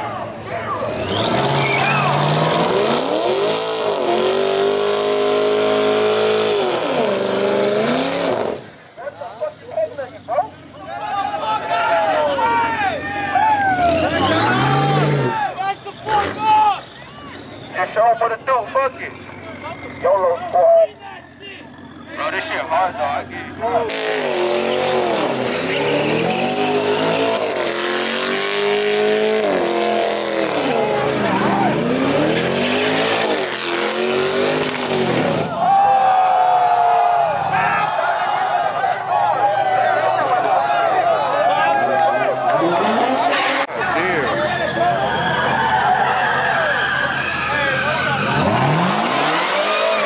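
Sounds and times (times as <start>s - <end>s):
crowd shouting: 0.0s - 4.8s, 9.0s - 34.6s, 35.4s - 50.0s
tyres squealing: 0.6s - 35.6s, 37.5s - 50.0s
car engine revving: 0.8s - 9.0s, 13.0s - 20.6s, 21.7s - 35.6s, 41.3s - 45.8s, 46.8s - 50.0s.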